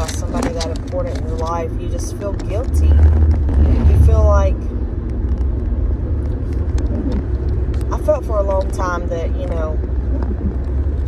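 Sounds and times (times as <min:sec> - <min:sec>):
car interior road and engine rumble: 0:00.0 - 0:11.0.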